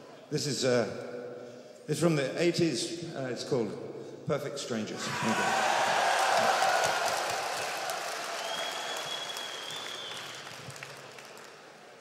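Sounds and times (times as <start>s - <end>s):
audience applauding and cheering: 5.1s - 12.0s
long high whistle: 8.4s - 10.5s.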